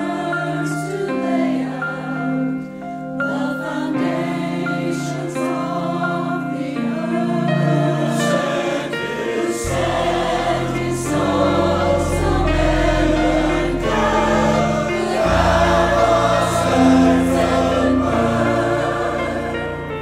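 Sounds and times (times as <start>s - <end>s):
choir singing a hymn: 0.0s - 20.0s
instrumental accompaniment with bass: 9.1s - 20.0s.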